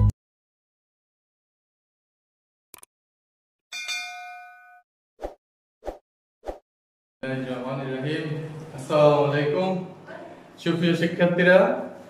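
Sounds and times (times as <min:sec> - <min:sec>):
notification bell ding: 0:03.7 - 0:04.8.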